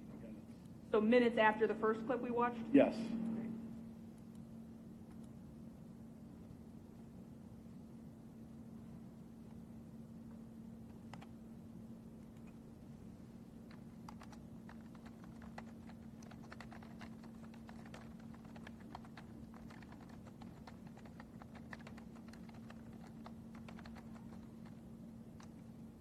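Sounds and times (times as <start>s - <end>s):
steady low hum: 0.0s - 26.0s
typing on computer keyboard: 10.9s - 11.4s, 13.6s - 25.8s.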